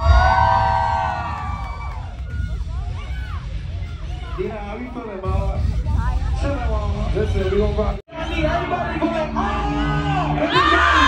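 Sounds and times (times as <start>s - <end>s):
audience cheering and screaming: 0.0s - 4.8s, 9.4s - 11.0s
low bass music: 0.0s - 11.0s.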